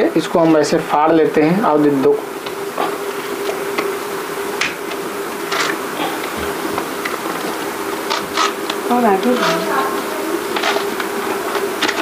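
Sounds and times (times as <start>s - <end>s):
steady buzzing hum: 0.0s - 12.0s.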